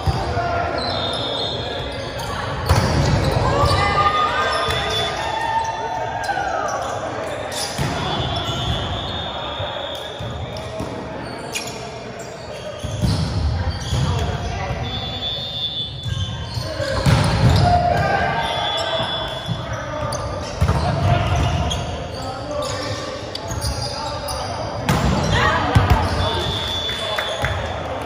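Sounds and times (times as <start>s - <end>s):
players shouting and chatter: 0.0s - 28.0s
volleyball hits: 2.6s - 3.8s, 7.7s - 8.9s, 16.9s - 18.4s, 24.8s - 26.8s.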